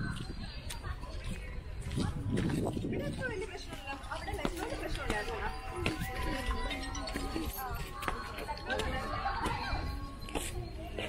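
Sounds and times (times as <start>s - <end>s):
passers-by talking: 0.0s - 11.0s
music: 3.7s - 11.0s.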